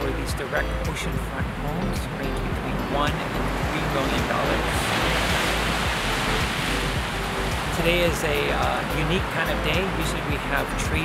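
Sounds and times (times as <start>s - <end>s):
surf washing on shore: 2.8s - 10.3s.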